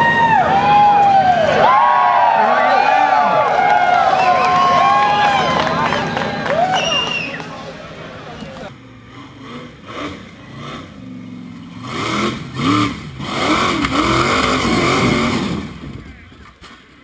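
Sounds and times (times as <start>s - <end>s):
buggy engine revving: 3.4s - 17.0s.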